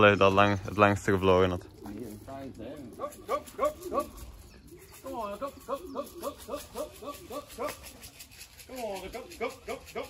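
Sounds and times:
man calling pigeons: 0:00.0 - 0:10.0.

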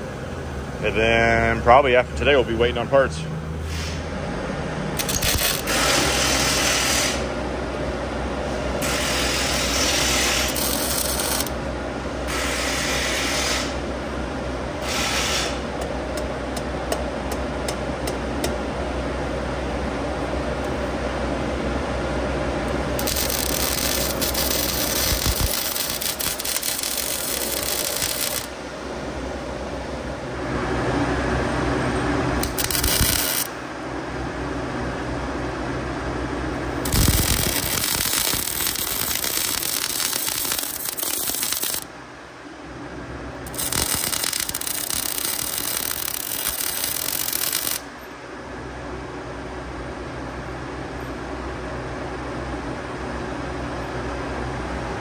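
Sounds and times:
welding arc crackling and hissing: 0:05.0 - 0:07.3, 0:08.8 - 0:11.6, 0:12.3 - 0:13.8, 0:22.7 - 0:28.6, 0:32.4 - 0:33.6, 0:36.6 - 0:41.9, 0:43.5 - 0:47.9
steady low hum: 0:07.2 - 0:12.8, 0:15.5 - 0:55.0.

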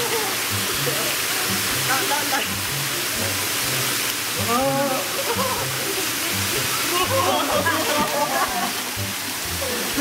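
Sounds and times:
water pouring down waterfall: 0:00.0 - 0:10.0.

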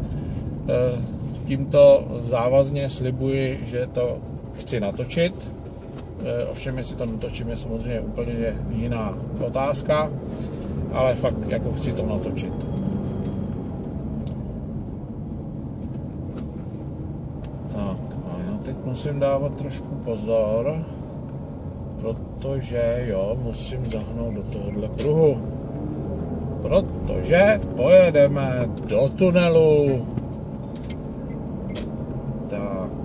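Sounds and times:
car driving heard from inside: 0:00.0 - 0:33.0.

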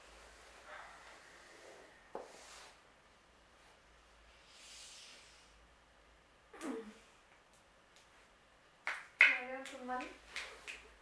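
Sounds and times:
woman speaking: 0:09.3 - 0:10.2.

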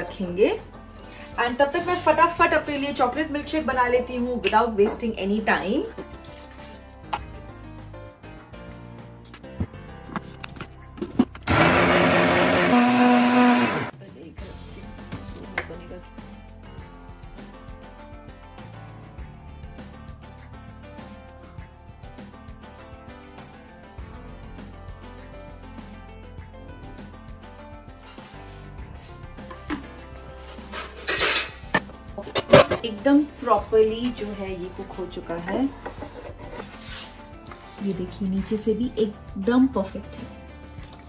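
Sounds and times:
background music: 0:00.0 - 0:41.0
blender motor whining: 0:11.4 - 0:13.9
metal cookware clattering: 0:30.6 - 0:32.9.

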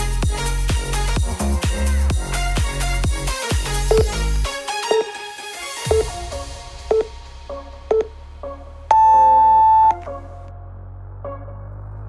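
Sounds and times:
long electronic timer beep: 0:03.9 - 0:04.2, 0:04.9 - 0:05.1, 0:05.9 - 0:06.2, 0:06.9 - 0:07.1, 0:07.9 - 0:08.1, 0:08.9 - 0:10.0.

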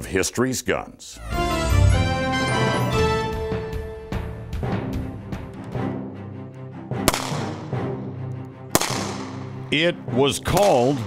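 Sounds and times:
background music: 0:01.2 - 0:11.0
revolver shots: 0:08.8 - 0:09.6.

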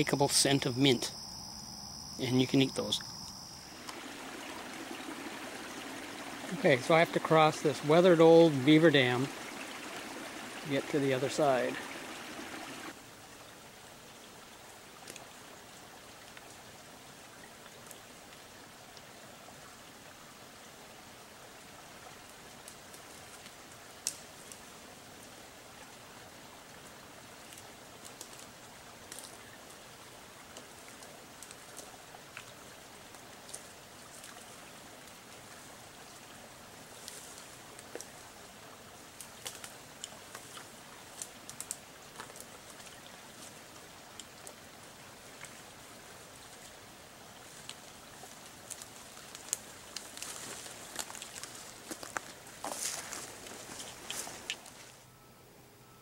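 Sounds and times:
water trickling: 0:02.8 - 0:52.1
sticks snapping underfoot: 0:24.1 - 0:24.6, 0:39.2 - 0:42.9, 0:48.6 - 0:54.6.

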